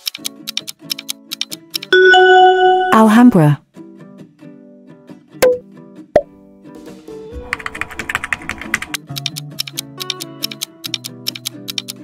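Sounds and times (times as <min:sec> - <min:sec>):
rapid typing-like clicking: 0:00.0 - 0:01.9, 0:07.4 - 0:12.0
countdown timer ticking: 0:00.0 - 0:03.5
background music: 0:00.0 - 0:03.6, 0:05.0 - 0:12.0.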